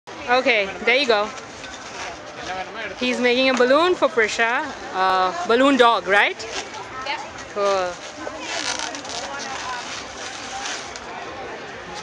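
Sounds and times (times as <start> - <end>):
crowd chatter: 0.1 - 12.0
balloon rubbing and squeaking: 7.9 - 11.0.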